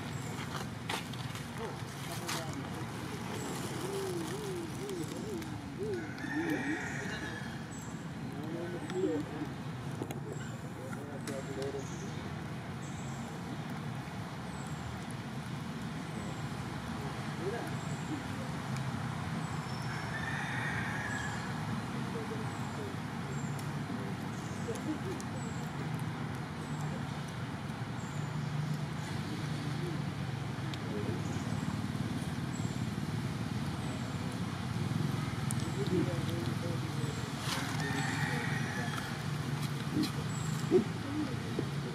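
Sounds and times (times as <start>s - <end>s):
faint voices: 0.0s - 14.4s, 16.2s - 19.5s, 20.2s - 28.0s, 28.7s - 32.6s, 33.6s - 41.9s.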